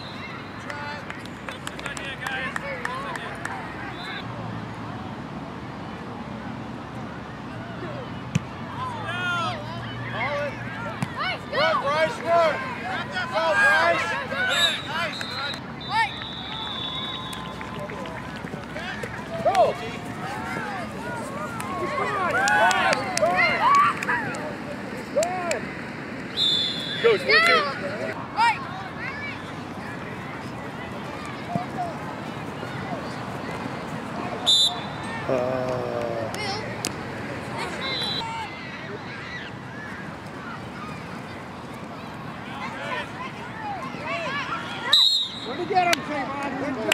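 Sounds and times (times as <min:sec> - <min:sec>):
referee's whistle blast: 0:14.5 - 0:17.6, 0:26.3 - 0:27.2, 0:34.4 - 0:35.0, 0:44.9 - 0:45.6
children and adults shouting: 0:19.2 - 0:24.4, 0:42.1 - 0:46.3.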